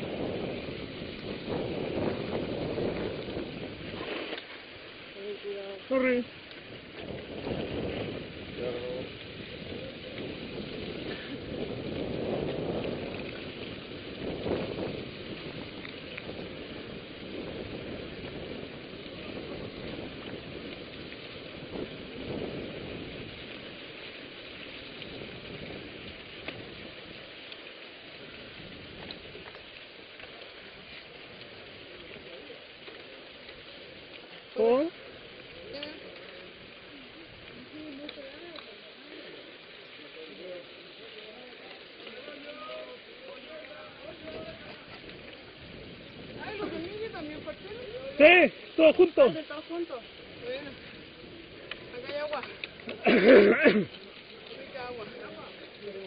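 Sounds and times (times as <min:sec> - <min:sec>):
wind on microphone: 0:00.0 - 0:40.0, 0:43.8 - 0:56.0
bike tyres crackling on gravel: 0:00.0 - 0:56.0.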